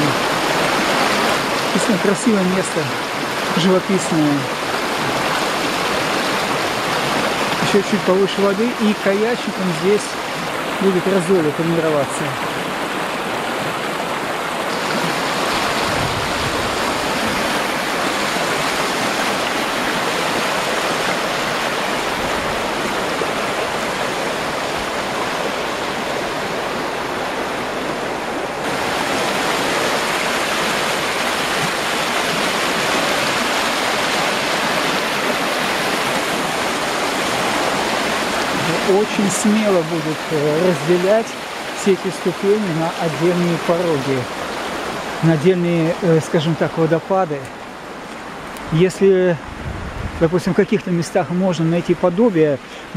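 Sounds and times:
river rapids rushing: 0.0s - 52.9s.

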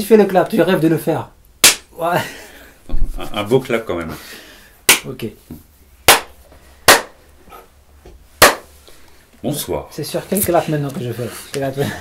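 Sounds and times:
sharp hand claps: 1.6s - 1.9s, 4.9s - 5.1s, 6.1s - 7.2s, 8.4s - 8.7s.

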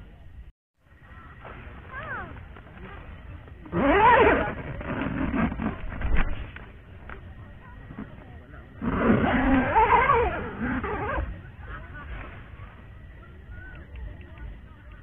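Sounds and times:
rustling: 1.0s - 13.8s.

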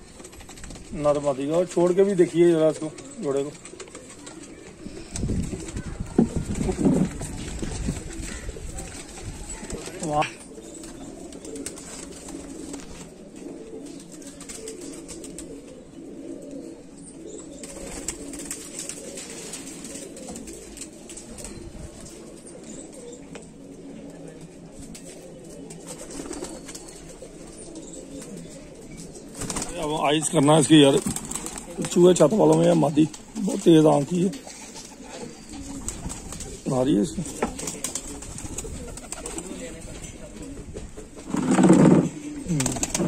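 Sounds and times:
pigeons cooing: 0.0s - 43.0s.

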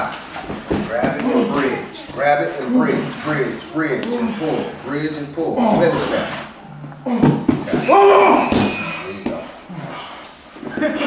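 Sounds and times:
people talking indistinctly: 0.8s - 9.9s.

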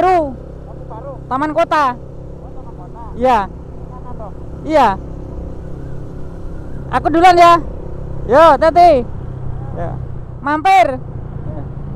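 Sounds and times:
motorcycle engines rumbling: 0.0s - 11.9s.

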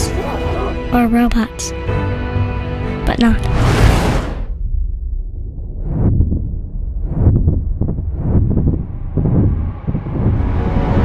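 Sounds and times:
deep uneven rumble: 3.2s - 11.0s.

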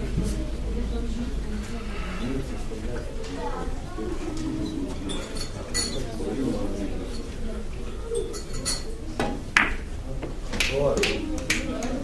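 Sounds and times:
murmur of voices: 0.0s - 12.0s.

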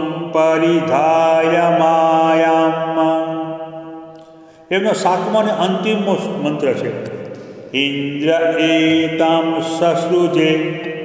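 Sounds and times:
man chanting: 0.0s - 7.1s, 7.7s - 11.0s.

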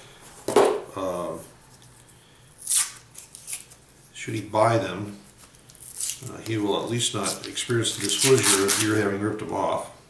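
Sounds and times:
paper coin wrapper crinkling: 5.5s - 9.2s.

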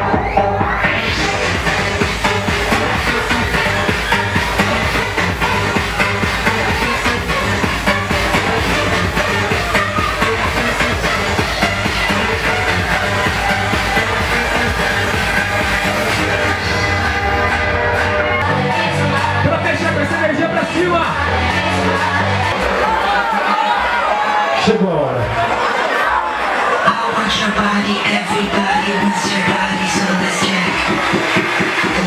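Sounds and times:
electronic dance music: 0.0s - 32.0s.

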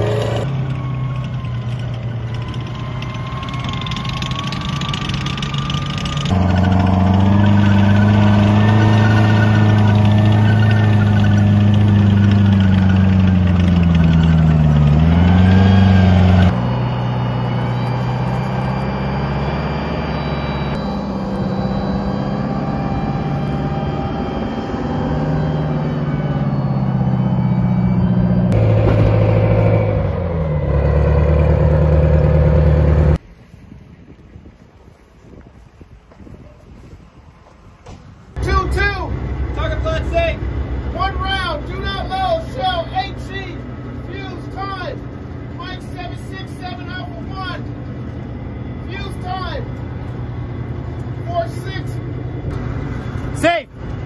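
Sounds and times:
diesel engine running loudly: 0.0s - 33.2s, 38.4s - 54.0s.

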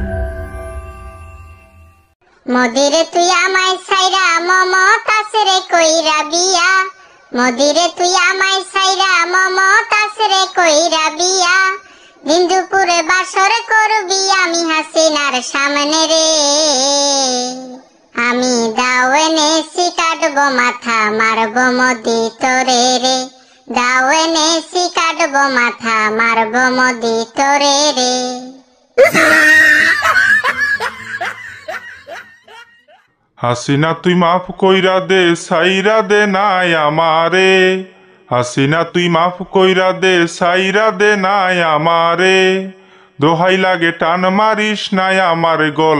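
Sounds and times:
high-pitched voice singing: 2.4s - 30.1s
person laughing: 29.0s - 33.0s.

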